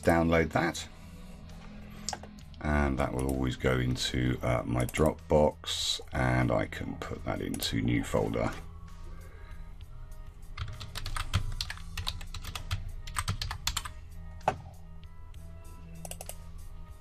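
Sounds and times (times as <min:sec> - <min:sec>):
computer keyboard typing: 0:10.6 - 0:14.0, 0:16.0 - 0:16.4.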